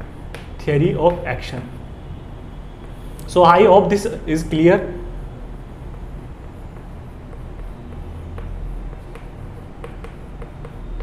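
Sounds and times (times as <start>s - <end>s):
chalk tapping on blackboard: 0.0s - 1.4s, 5.6s - 11.0s
steady low hum: 0.0s - 11.0s.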